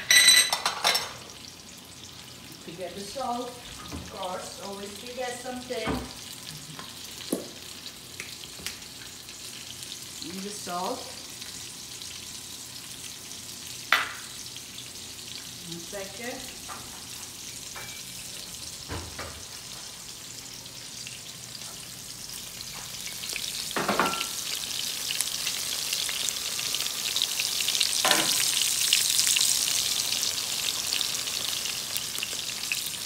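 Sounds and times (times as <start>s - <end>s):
patties sizzling in oil: 0.0s - 33.0s.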